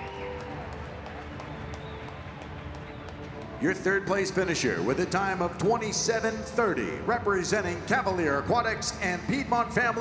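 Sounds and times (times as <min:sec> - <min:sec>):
hubbub of indoor hall: 0:00.0 - 0:10.0
low background music: 0:00.0 - 0:10.0.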